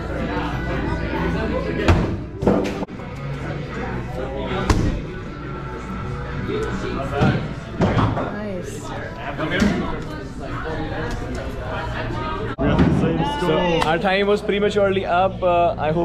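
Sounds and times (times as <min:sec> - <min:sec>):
background music: 0:00.0 - 0:12.5
voices: 0:03.0 - 0:16.0.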